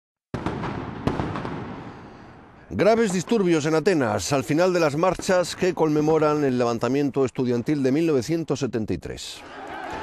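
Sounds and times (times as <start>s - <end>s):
sharp bangs: 0.3s - 6.4s
riot crowd din: 9.4s - 10.0s.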